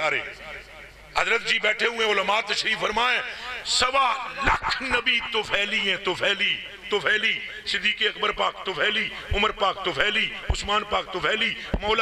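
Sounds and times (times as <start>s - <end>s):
man speaking into microphone: 0.0s - 12.0s.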